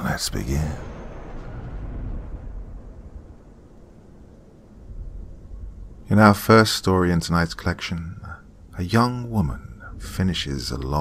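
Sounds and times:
low dark rumble: 0:00.0 - 0:11.0.

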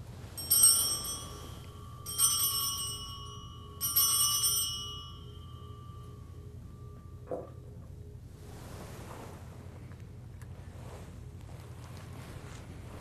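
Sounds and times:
altar bells ringing: 0:00.3 - 0:07.3.

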